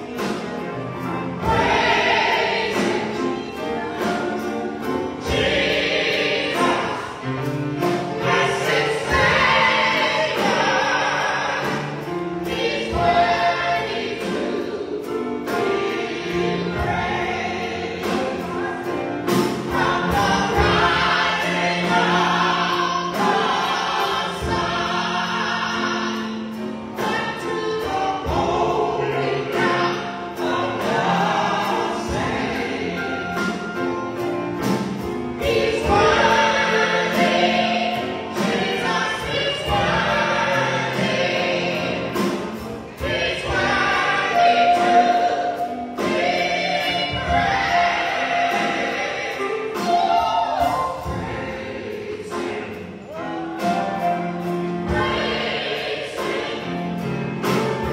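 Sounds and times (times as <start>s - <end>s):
drum kit hits: 0.0s - 57.9s
keyboard: 0.0s - 57.9s
group singing gospel song: 1.2s - 57.9s.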